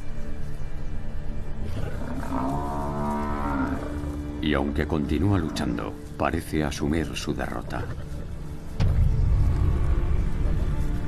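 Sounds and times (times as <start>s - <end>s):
background music: 0.0s - 11.0s
buffalo bellowing: 1.6s - 4.2s
lions growling: 1.6s - 4.2s.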